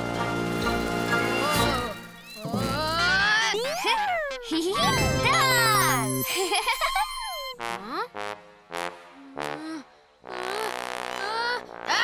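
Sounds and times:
playful cartoon music: 0:00.0 - 0:12.0
tinkling chime cascade: 0:04.8 - 0:07.6.

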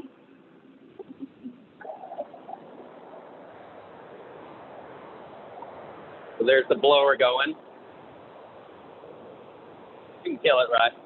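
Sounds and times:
blower rushing steadily: 0:00.0 - 0:11.0.

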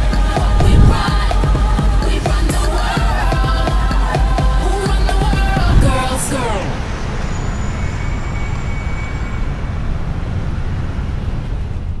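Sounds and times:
music with downward pitch slide: 0:00.0 - 0:06.4
city traffic rumble: 0:04.6 - 0:12.0.

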